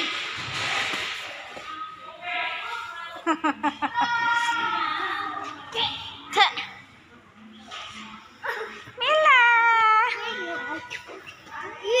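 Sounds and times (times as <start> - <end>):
children's voices and chatter: 1.4 - 12.0.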